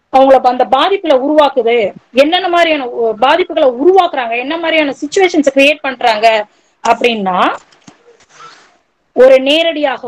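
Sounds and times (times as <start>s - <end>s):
woman speaking: 0.1s - 7.7s, 9.2s - 10.0s.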